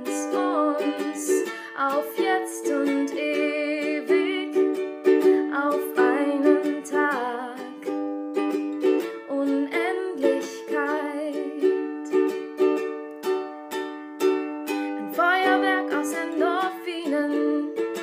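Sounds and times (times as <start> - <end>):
person singing: 0.0 - 8.0, 8.8 - 12.3, 15.0 - 18.0
ukulele strumming chords: 0.0 - 18.0.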